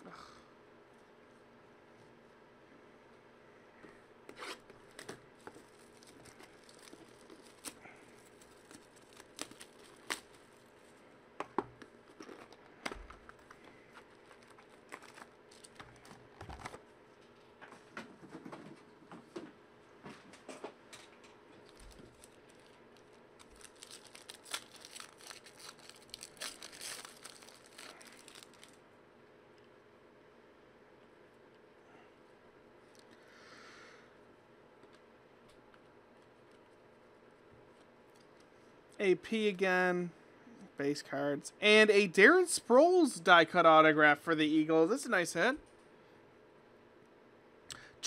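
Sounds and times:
foil wrappers crinkling and tearing: 4.4 - 11.0, 12.0 - 16.8, 21.5 - 28.8
cards clicking and rustling: 4.6 - 10.7, 11.8 - 16.8.

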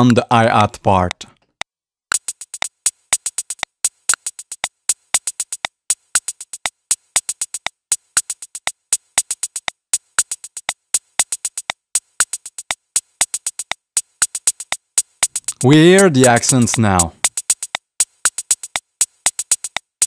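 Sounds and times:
drum machine hi-hat roll: 2.1 - 20.0.

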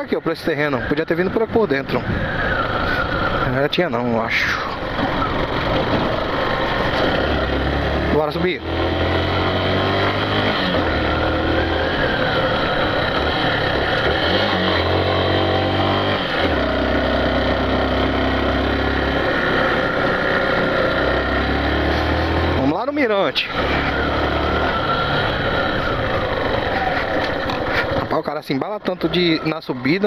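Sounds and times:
road and wind noise: 0.0 - 30.0
motorcycle engine under load: 2.2 - 30.0.

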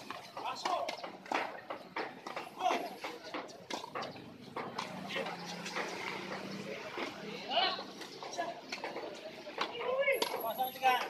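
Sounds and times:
tennis ball bouncing on court: 0.0 - 10.4.

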